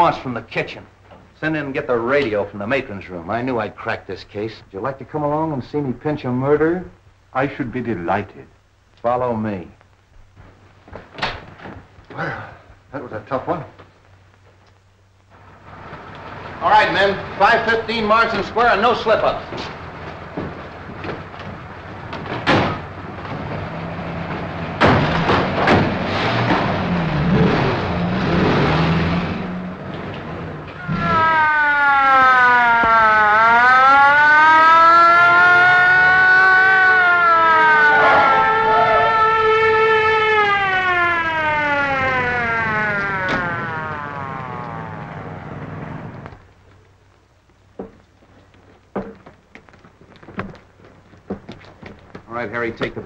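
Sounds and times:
car engines running: 15.4 - 31.2, 41.6 - 46.4
police siren wailing: 30.6 - 46.3.

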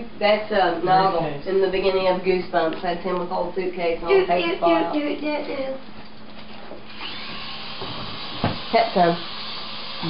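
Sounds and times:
toy helicopter motor whirring: 6.9 - 10.0.

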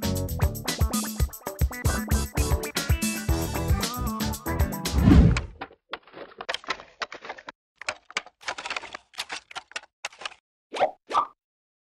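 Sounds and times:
quick clicks: 6.5 - 10.4.

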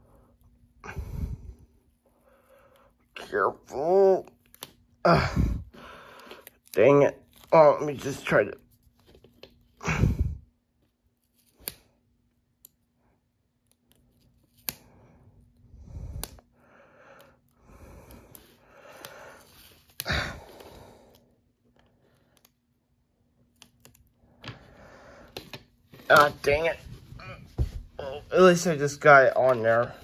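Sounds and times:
soft rubbing and rustling: 25.7 - 30.0.

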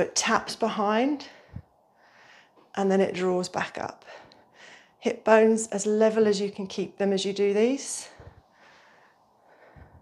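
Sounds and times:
faint breathing: 1.2 - 2.7, 4.0 - 5.0, 8.0 - 10.0.

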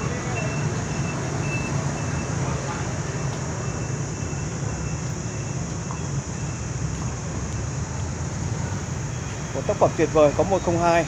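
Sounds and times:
outdoor background hiss: 0.0 - 11.0
faint high-pitched beeps: 0.1 - 2.4, 3.1 - 6.8.

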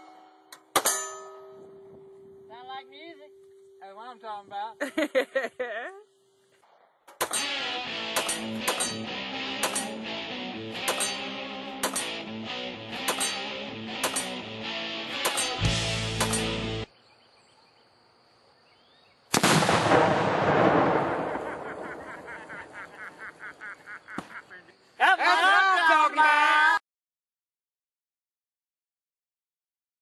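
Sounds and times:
music with beat and sharp hits: 7.3 - 16.9
loud explosion: 19.4 - 22.8.

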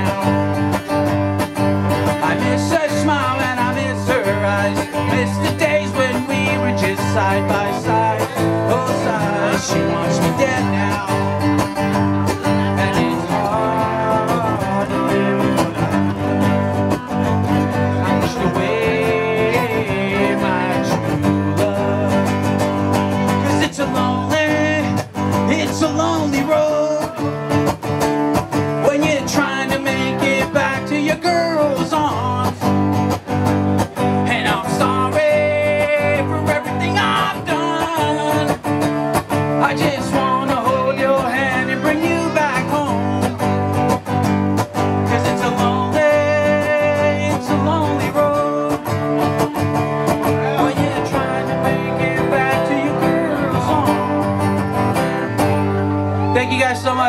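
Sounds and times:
acoustic guitar strumming: 0.0 - 57.0
person singing: 2.0 - 27.5, 28.7 - 33.3, 33.9 - 44.1, 44.9 - 57.0.

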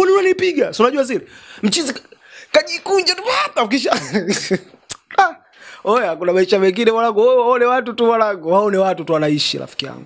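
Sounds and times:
man laughing: 3.7 - 4.8.

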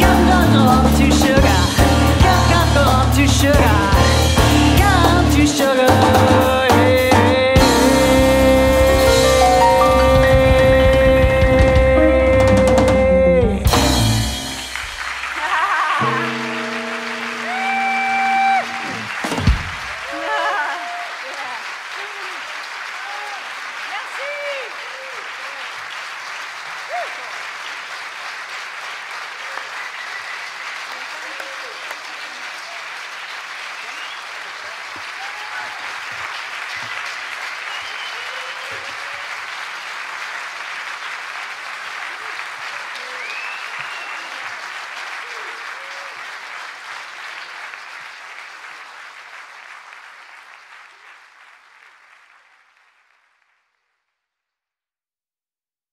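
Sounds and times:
audience applauding: 0.0 - 53.9.

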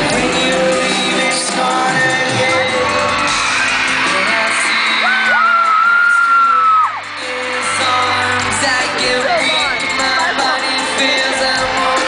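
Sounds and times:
live pop concert music: 0.0 - 12.0.

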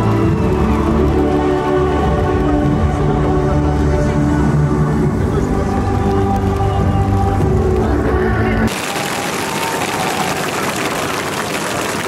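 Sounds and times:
rain falling: 0.0 - 2.6, 8.7 - 12.0.

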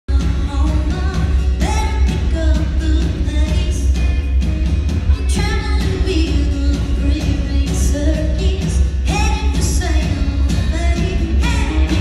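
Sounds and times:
boomy bass: 0.1 - 12.0
live band playing: 0.1 - 12.0
steady drum beat: 0.1 - 12.0.

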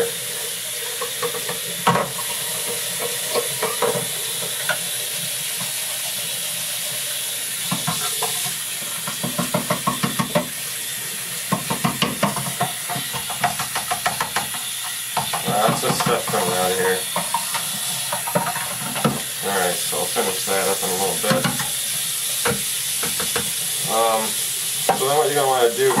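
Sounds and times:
tap water running into sink: 0.0 - 26.0.

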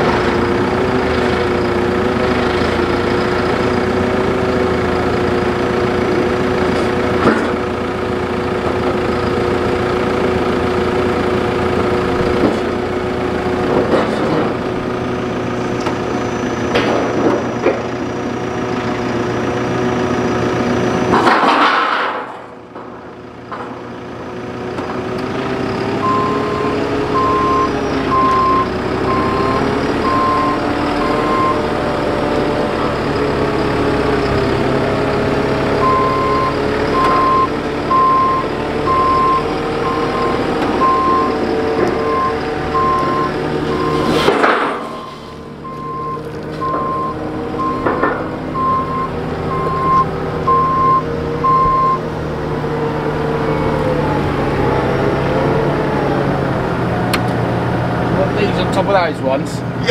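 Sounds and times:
diesel engine revving: 0.0 - 59.9
reversing alarm beeping: 26.0 - 31.7, 35.8 - 41.4, 42.0 - 52.1.

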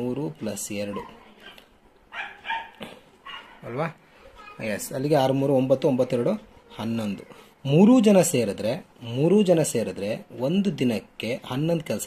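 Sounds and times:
dog barking: 0.9 - 3.6.

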